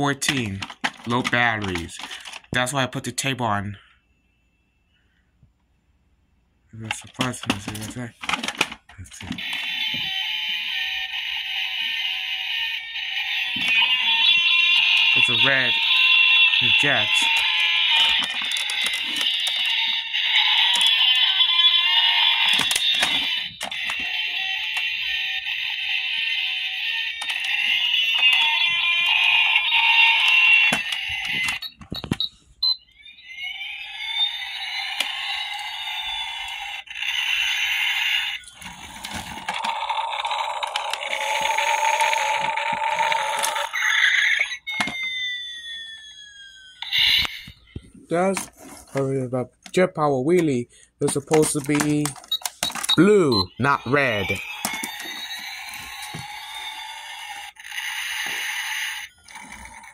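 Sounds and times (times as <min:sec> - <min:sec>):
toy electronic sound effects: 0:00.1 - 0:02.7, 0:07.0 - 0:47.9, 0:51.1 - 0:59.9
falling whistle: 0:44.3 - 0:47.5.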